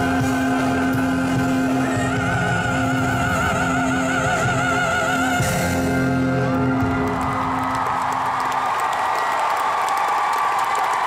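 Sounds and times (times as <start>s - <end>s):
tenor singing with vibrato: 0.0s - 6.8s
live band accompaniment: 0.0s - 8.8s.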